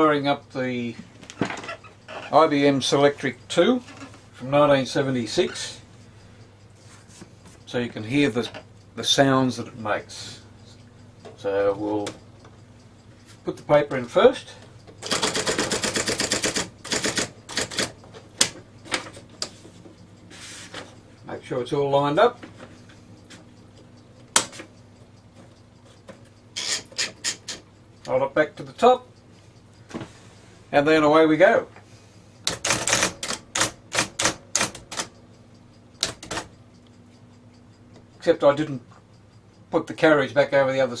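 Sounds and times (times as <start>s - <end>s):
typewriter motor hum: 14.9s - 19.3s, 26.5s - 27.7s, 32.4s - 35.1s, 35.9s - 36.6s
typewriter mechanism clattering: 15.0s - 19.2s, 26.6s - 27.6s, 32.5s - 35.1s, 36.0s - 36.5s.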